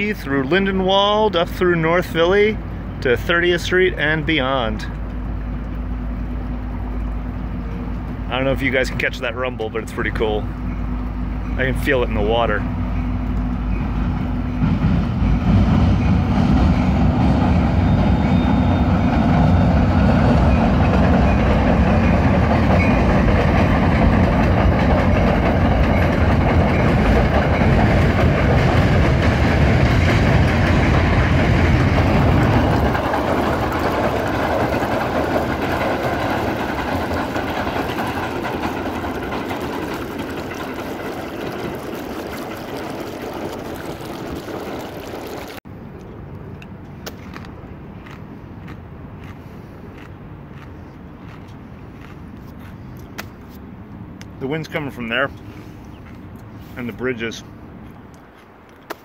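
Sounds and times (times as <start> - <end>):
train rumbling over steel bridge: 0.0 - 46.9, 53.6 - 58.7.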